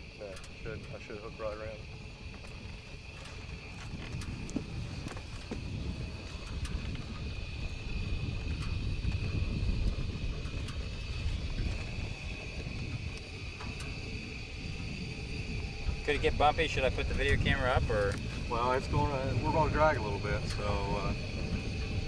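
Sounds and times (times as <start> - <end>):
low wind rumble: 0.0 - 22.0
scattered clicks: 0.1 - 14.2.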